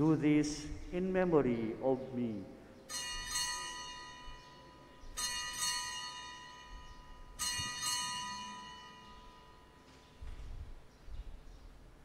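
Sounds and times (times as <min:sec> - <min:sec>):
altar bells ringing: 0:02.9 - 0:10.1.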